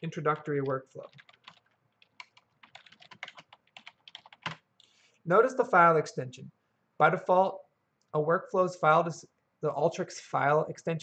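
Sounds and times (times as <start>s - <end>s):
typing on a keyboard: 0.3s - 4.6s.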